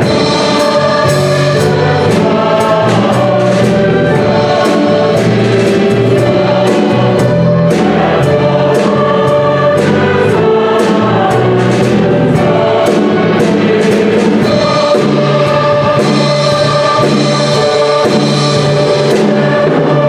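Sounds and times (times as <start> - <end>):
cymbals keeping a beat: 0.0 - 20.0
mixed choir singing: 0.0 - 20.0
piano: 0.0 - 20.0.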